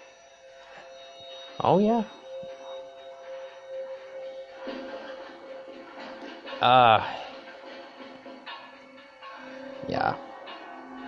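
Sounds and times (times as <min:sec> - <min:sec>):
soft music from television speaker: 0:00.0 - 0:11.0.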